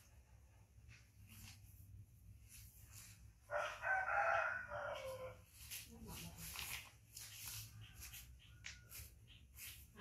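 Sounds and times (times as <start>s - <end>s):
rooster crowing: 3.4s - 5.4s.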